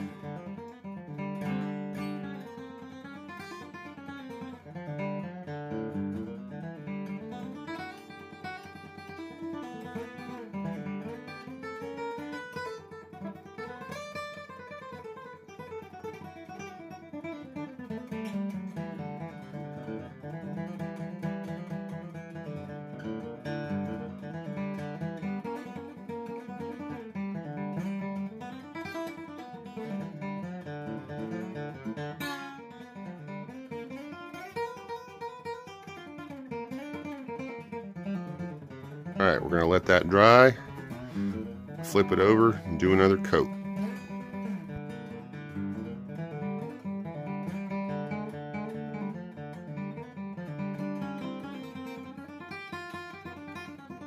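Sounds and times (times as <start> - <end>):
acoustic guitar plucked and strummed: 0.0 - 54.0.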